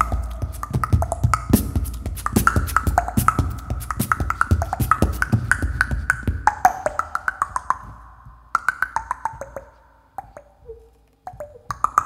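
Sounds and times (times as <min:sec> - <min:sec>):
vocal percussion mouth clicks: 0:00.0 - 0:12.0.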